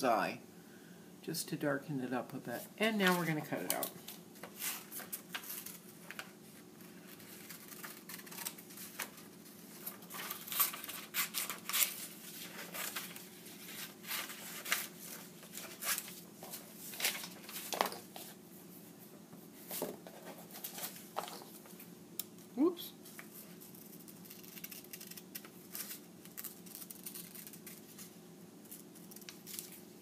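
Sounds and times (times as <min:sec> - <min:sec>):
paper rustling: 0:02.9 - 0:18.4, 0:19.6 - 0:21.8
scissors snipping paper: 0:23.6 - 0:28.1.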